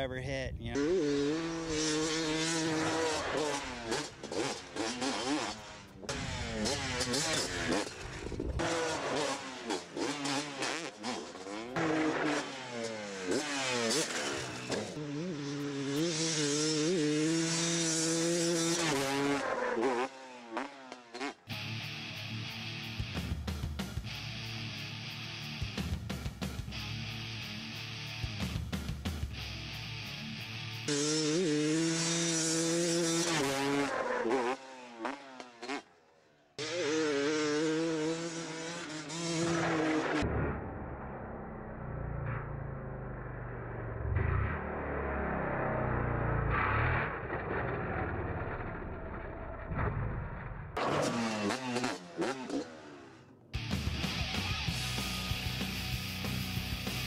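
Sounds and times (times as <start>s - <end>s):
dirt bike engine revving: 0.7s - 57.0s.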